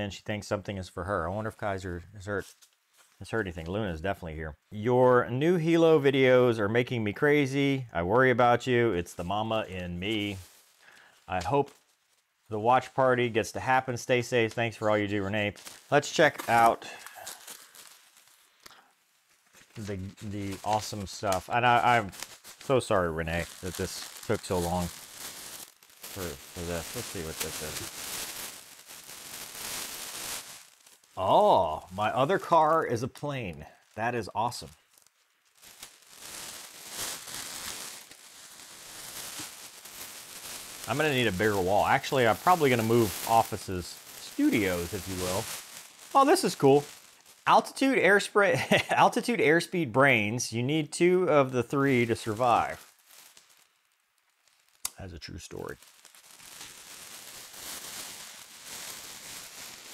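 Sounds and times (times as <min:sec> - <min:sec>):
tissue paper rustling: 0:09.1 - 0:18.6, 0:19.3 - 0:49.4, 0:51.7 - 0:53.6, 0:55.3 - 0:59.9.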